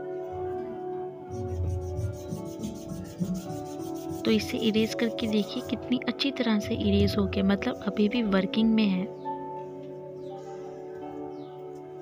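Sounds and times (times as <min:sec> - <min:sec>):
soft background music: 0:00.0 - 0:12.0
eraser scrubbing on paper: 0:01.3 - 0:05.9.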